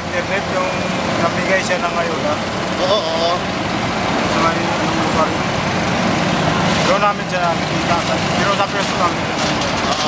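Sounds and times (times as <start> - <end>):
city street traffic: 0.0 - 10.0
speech fragments: 6.8 - 10.0.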